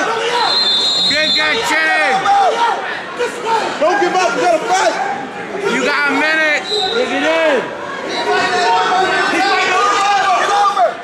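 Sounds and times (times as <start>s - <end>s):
people shouting encouragement: 0.0s - 11.0s.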